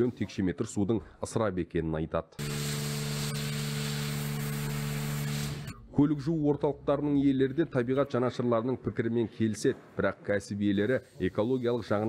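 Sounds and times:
pressure washer spraying water: 2.4 - 5.7.

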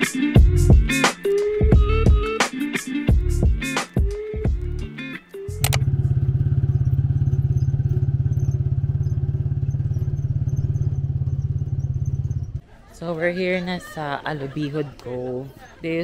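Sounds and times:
small motorcycle engine running: 5.6 - 12.6.

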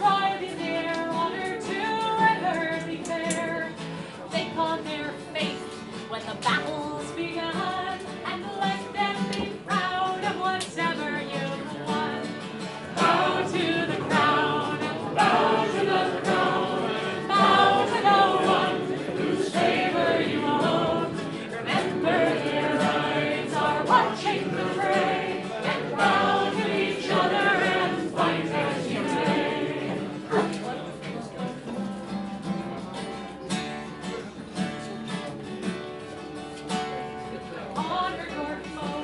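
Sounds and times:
person singing folk song: 0.0 - 33.1, 36.8 - 39.0
acoustic guitar strumming: 0.0 - 39.0.

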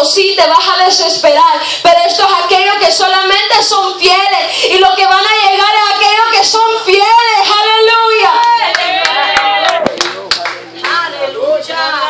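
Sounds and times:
hand claps: 8.4 - 11.0.

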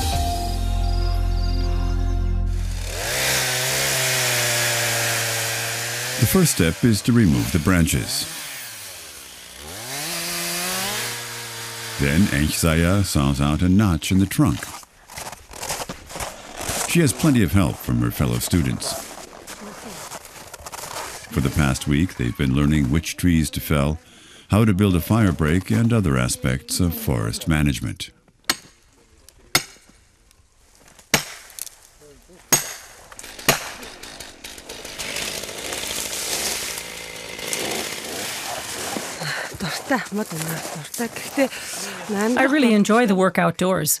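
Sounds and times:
chainsaw cutting branches: 2.5 - 12.8, 32.5 - 42.5
tool chopping into tree trunk: 31.1 - 31.8, 32.5 - 34.2.

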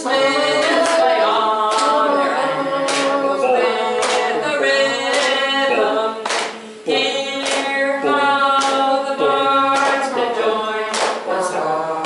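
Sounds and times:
group singing with woman leading: 0.0 - 12.0
sharp rhythmic beats: 0.0 - 12.0.

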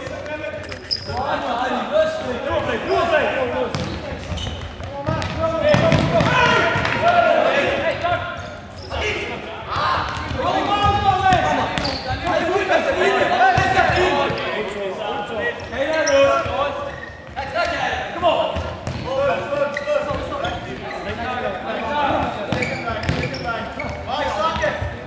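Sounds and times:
players shouting: 1.1 - 15.3.

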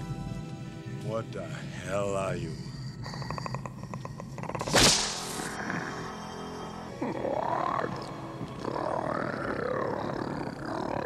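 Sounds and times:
creature roar: 7.0 - 11.0.

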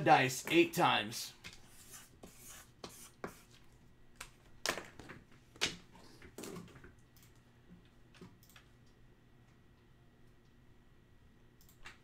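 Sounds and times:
computer keyboard and mouse clicks: 8.2 - 9.0, 11.6 - 12.0.

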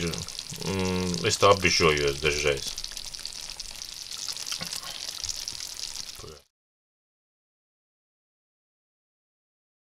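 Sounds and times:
chicken sizzling in a frying pan: 0.0 - 6.5.

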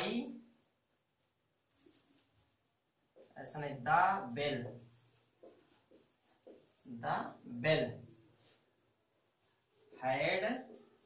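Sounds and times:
marker pen writing on whiteboard: 1.8 - 7.6.

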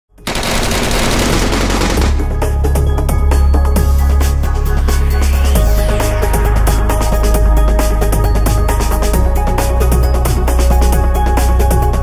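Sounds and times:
rapid automatic gunfire: 0.3 - 2.5.

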